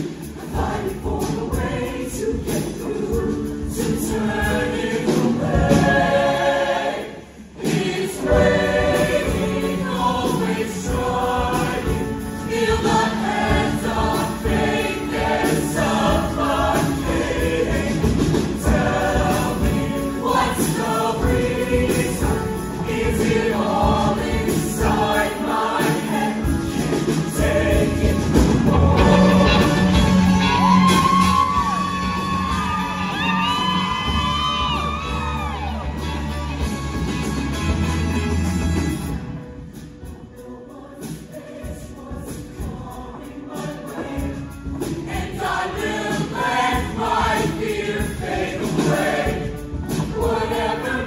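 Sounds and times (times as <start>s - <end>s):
choir singing up-tempo song: 0.0s - 51.0s
instrumental accompaniment with bass: 0.0s - 51.0s.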